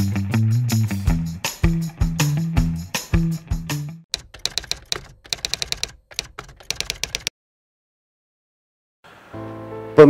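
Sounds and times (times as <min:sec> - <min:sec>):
keyboard key clicks: 0:04.2 - 0:07.3.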